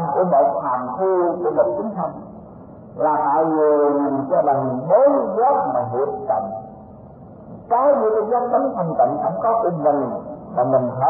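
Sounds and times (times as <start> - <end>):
man chanting: 0.0 - 2.2, 3.0 - 6.7, 7.7 - 11.0.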